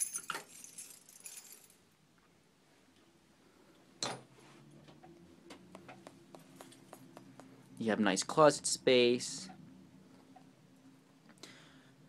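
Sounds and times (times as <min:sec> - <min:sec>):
metallic jingling: 0:00.0 - 0:01.8.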